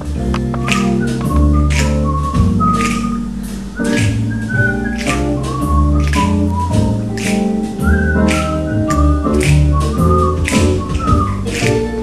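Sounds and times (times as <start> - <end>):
slow live band accompaniment: 0.0 - 12.0
soft percussion: 0.0 - 12.0
person whistling melody: 0.4 - 12.0.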